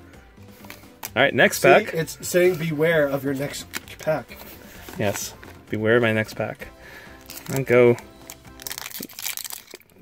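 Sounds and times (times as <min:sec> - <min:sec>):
faint background music: 0:00.0 - 0:10.0
foil wrapper crinkling: 0:07.0 - 0:10.0.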